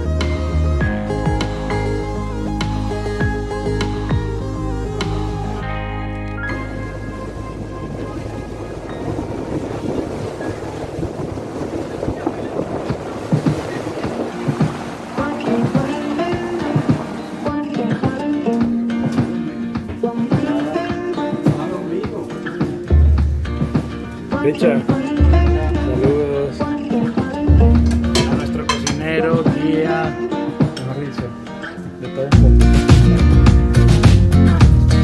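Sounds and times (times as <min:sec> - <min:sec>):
background music: 0:00.0 - 0:11.4, 0:12.8 - 0:35.0
wind: 0:00.0 - 0:17.5
water noise from moving boat: 0:01.7 - 0:29.8.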